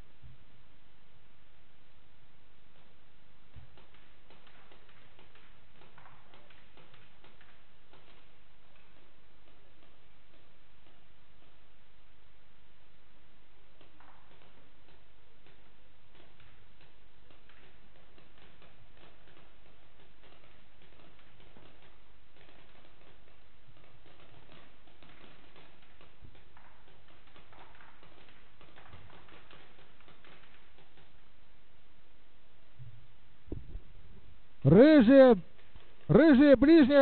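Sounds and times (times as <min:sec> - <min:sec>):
steady background hiss: 0:00.0 - 0:37.0
paintball marker clicks and pops: 0:03.5 - 0:11.6, 0:13.8 - 0:31.2.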